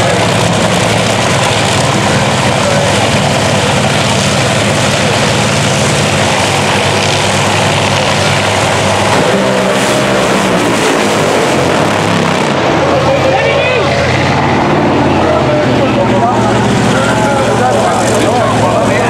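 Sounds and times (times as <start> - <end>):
dragster engine idling loudly: 0.0 - 19.0.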